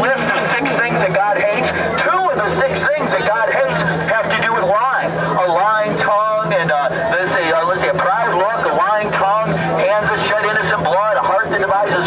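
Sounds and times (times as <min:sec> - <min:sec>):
man speaking through loudspeaker: 0:00.0 - 0:12.0
steady low hum: 0:00.0 - 0:12.0.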